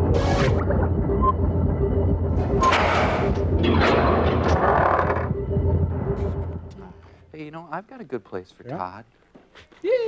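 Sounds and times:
low electronic drone: 0:00.0 - 0:07.3.

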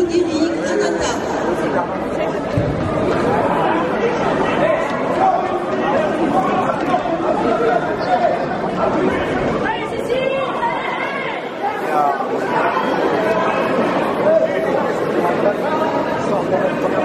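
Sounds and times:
crowd chattering in sports hall: 0:00.0 - 0:17.0.

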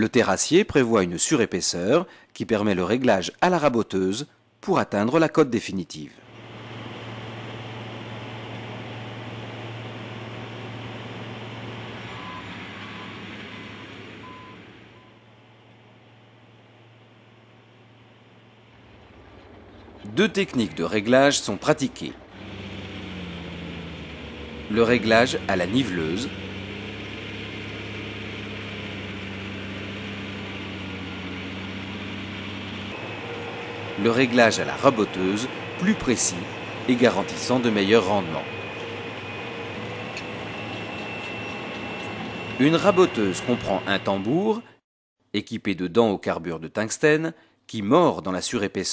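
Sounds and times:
construction machine engine hum: 0:06.1 - 0:44.8
short beeps: 0:12.1 - 0:13.2
grinding noise: 0:17.7 - 0:44.6
blade cutting soil: 0:22.2 - 0:39.1.

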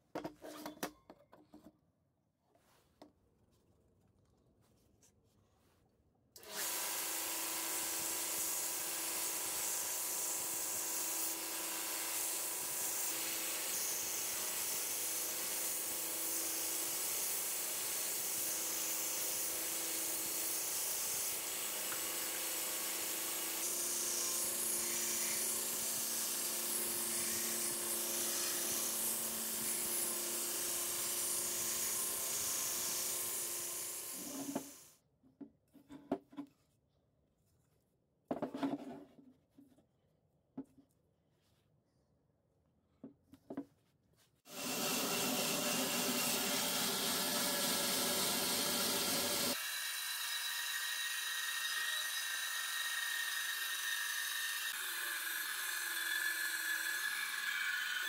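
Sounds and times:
electric motor humming: 0:44.5 - 0:49.6.

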